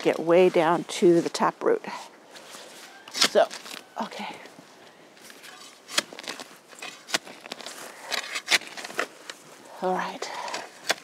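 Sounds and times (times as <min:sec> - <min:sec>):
rustling in soil and foliage: 0:00.0 - 0:11.0
pruners snipping: 0:03.1 - 0:03.8.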